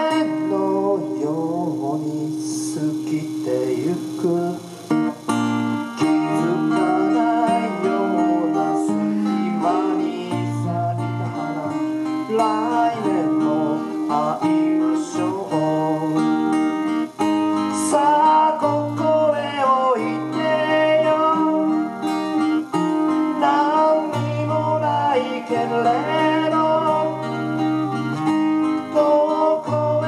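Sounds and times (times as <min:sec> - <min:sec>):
man singing: 0:00.0 - 0:05.3, 0:05.9 - 0:22.1, 0:23.0 - 0:27.7, 0:28.6 - 0:30.0
two acoustic guitars: 0:00.0 - 0:30.0.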